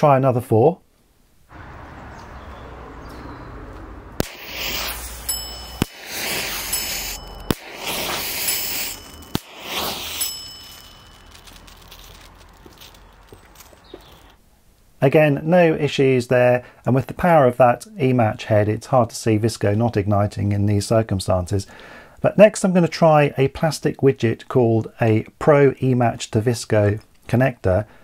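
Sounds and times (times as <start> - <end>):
electric match pop: 4.2 - 13.2
hissing flare: 4.2 - 13.4.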